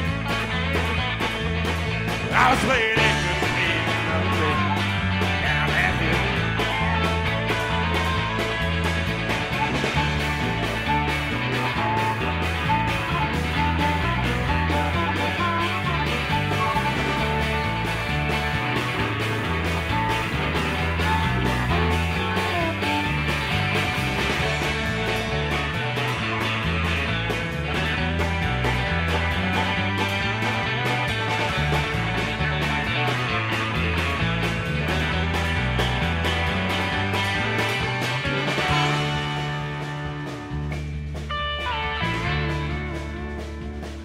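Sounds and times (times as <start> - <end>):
bass guitar: 0.0 - 44.0
electric guitar: 0.0 - 44.0
steady drum beat: 0.0 - 44.0
harmonica solo: 9.1 - 25.4.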